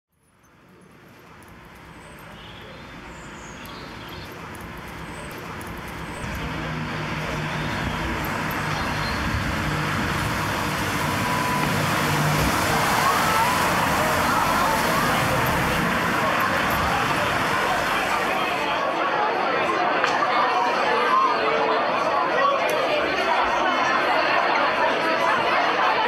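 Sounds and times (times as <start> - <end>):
car traffic: 0.2 - 19.0
voices: 0.7 - 26.0.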